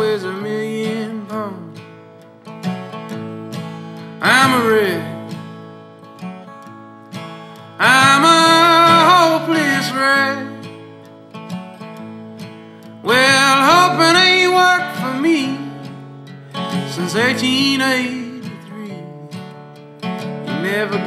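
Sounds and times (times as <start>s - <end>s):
acoustic guitar strummed: 0.0s - 21.0s.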